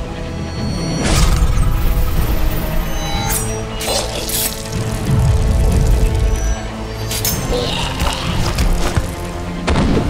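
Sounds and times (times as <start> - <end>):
dramatic film score music: 0.0 - 10.0.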